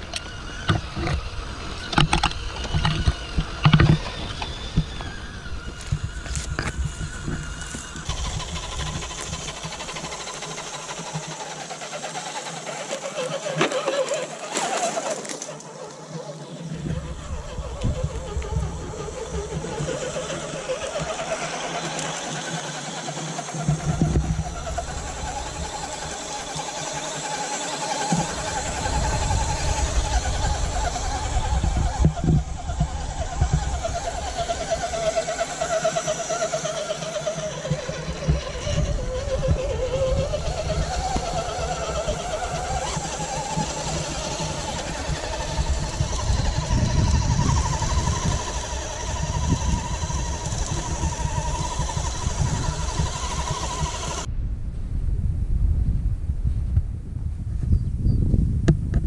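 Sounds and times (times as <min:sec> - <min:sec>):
toy truck drivetrain whining: 0:00.0 - 0:54.3
low rumbling noise: 0:23.6 - 0:59.0.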